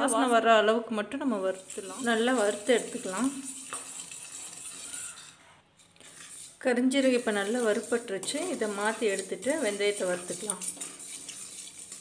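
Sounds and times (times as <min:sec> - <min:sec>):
speech: 0:00.0 - 0:03.4, 0:06.6 - 0:10.7
spatula scraping seeds in pan: 0:01.4 - 0:12.0.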